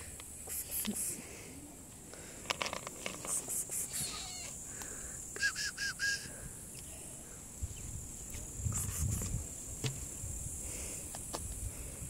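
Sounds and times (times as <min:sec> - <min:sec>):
insect chirring: 0:00.0 - 0:12.0.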